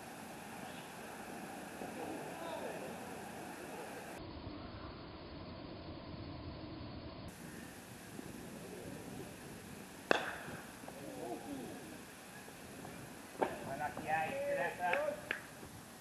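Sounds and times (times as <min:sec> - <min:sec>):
men calling out: 0:01.7 - 0:04.2, 0:10.9 - 0:12.1, 0:13.4 - 0:15.3.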